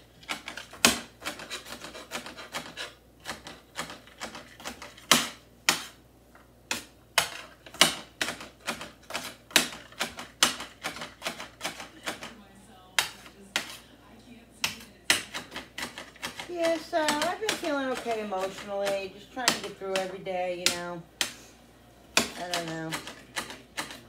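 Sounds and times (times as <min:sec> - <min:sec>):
knife chopping on cutting board: 0:00.3 - 0:06.0, 0:06.7 - 0:12.3, 0:13.0 - 0:13.8, 0:14.6 - 0:21.4, 0:22.1 - 0:24.0.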